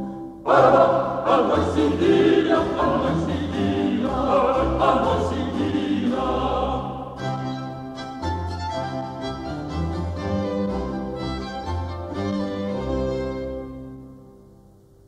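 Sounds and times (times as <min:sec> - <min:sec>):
baroque ensemble bass line: 0:00.0 - 0:14.9
mixed chorus singing: 0:00.4 - 0:07.3.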